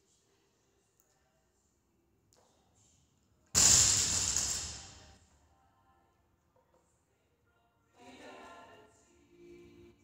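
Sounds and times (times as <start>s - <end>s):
barbell crashing onto rubber floor: 3.6s - 5.1s.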